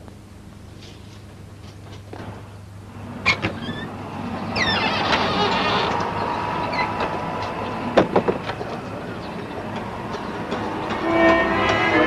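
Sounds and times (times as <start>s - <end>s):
dramatic orchestral chord: 11.0s - 12.0s.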